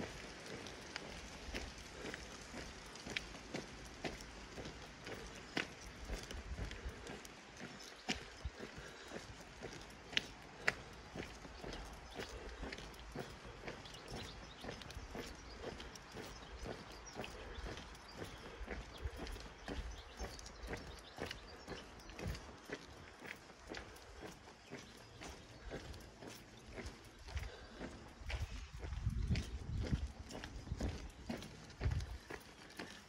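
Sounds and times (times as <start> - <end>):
footsteps on pavement: 0.0 - 33.0.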